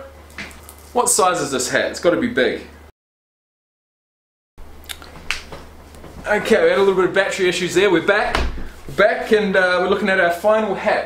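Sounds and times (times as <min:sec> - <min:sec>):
low steady hum: 0:04.6 - 0:11.0.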